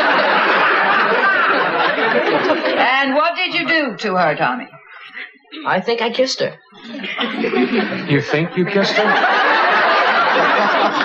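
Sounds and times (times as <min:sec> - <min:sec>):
audience laughing loudly: 0:00.0 - 0:03.1, 0:06.8 - 0:11.0.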